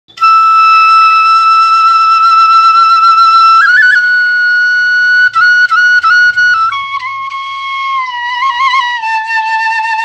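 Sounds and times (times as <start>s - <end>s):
flute holding high note: 0.1s - 10.0s.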